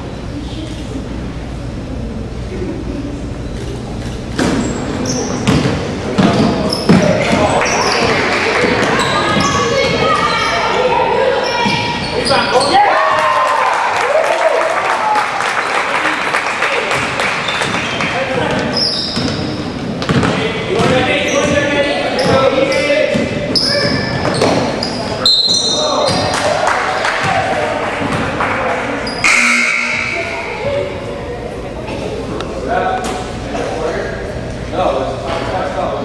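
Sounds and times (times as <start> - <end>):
sneakers squeaking: 2.9 - 12.8, 16.9 - 26.4, 29.0 - 32.3
spectators' voices and shouts: 6.0 - 14.3
basketball bouncing on wooden floor: 20.0 - 21.6.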